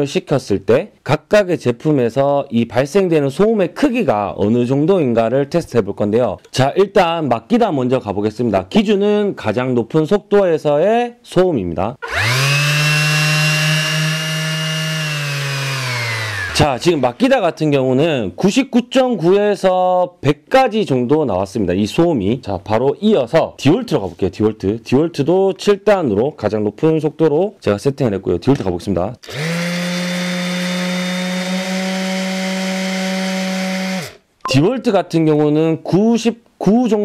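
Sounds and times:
orbital sander whining: 12.0 - 17.4, 29.2 - 34.2.

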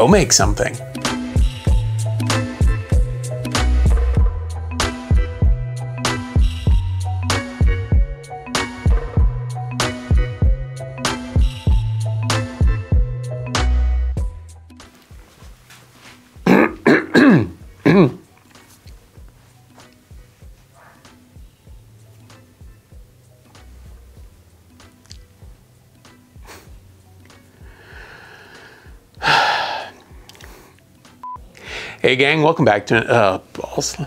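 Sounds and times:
man speaking: 0.0 - 0.8
man clearing his throat: 16.4 - 18.3
man breathing: 27.6 - 30.8, 31.5 - 32.0.

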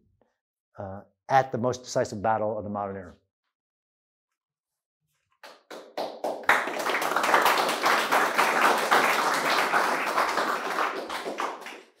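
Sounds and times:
audience applauding: 5.4 - 12.0.

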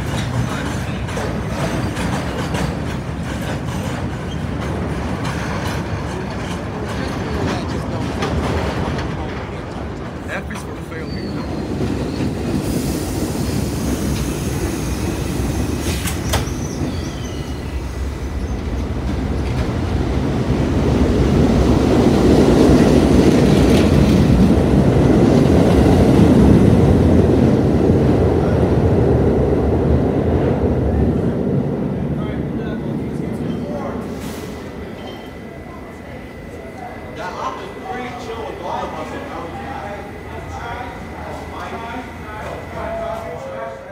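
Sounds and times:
subway train wheels rumbling: 0.0 - 43.9
wheel squeal: 11.0 - 12.4, 15.9 - 17.8.

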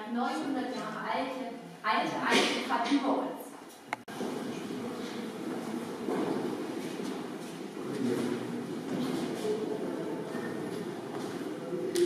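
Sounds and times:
faint indistinct voices: 4.1 - 12.0.

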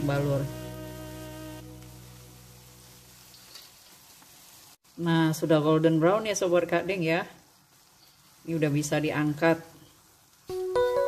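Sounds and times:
background music with held notes: 0.0 - 3.1, 10.5 - 11.0
food deep-frying in hot oil: 0.0 - 11.0.

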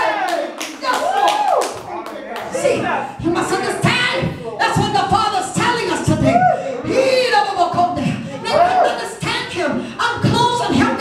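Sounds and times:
rhythmic hand clapping: 0.2 - 2.6.

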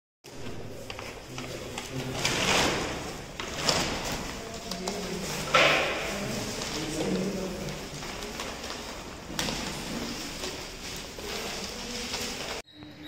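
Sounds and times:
papers and boxes rustling: 0.3 - 12.6
faint background voices: 0.3 - 13.0.

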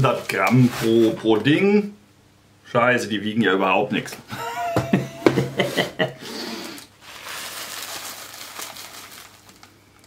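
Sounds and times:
bag crinkling: 6.5 - 10.0.

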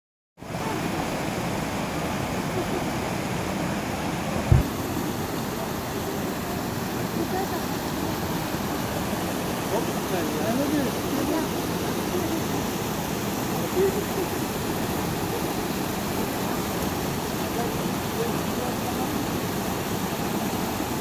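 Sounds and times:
stream rushing over rocks: 0.4 - 21.0
faint voices: 2.2 - 20.9
low thump: 4.4 - 4.7.

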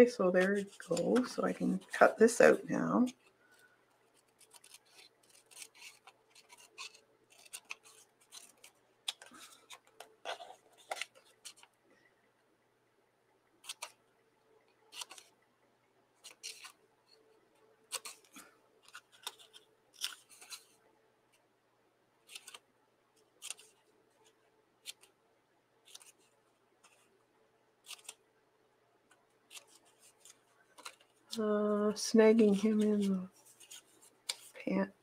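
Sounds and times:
scissors snipping paper: 4.2 - 11.7, 13.6 - 14.0, 14.9 - 15.3.

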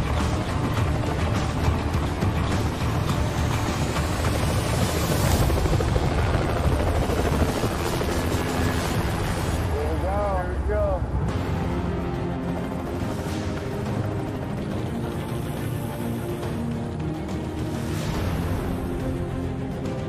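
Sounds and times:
helicopter rotor beating: 0.0 - 20.0
turbine whine: 0.0 - 20.0.

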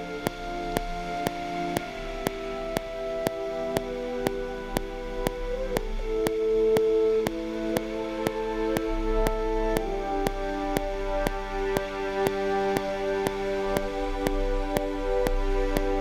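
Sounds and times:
french horn chords: 0.0 - 16.0
metronome clicks: 0.0 - 16.0.

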